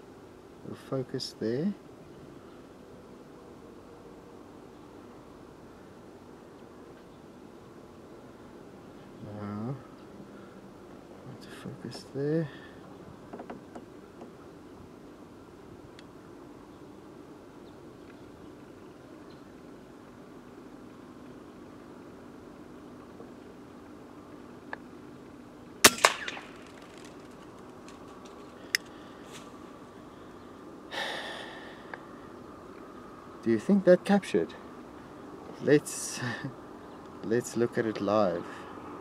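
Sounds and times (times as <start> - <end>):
air rifle shot: 25.8 - 27.2.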